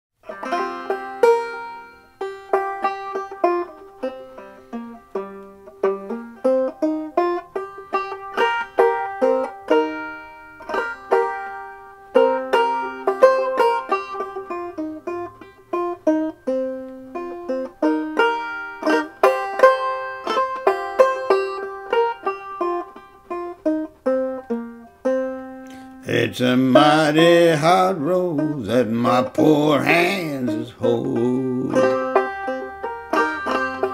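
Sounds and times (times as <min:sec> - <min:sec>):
banjo picking: 0:00.2 - 0:33.9.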